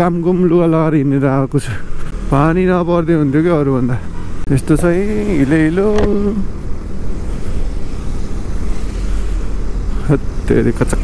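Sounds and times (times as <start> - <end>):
motorcycle engine rumble: 0.0 - 11.0.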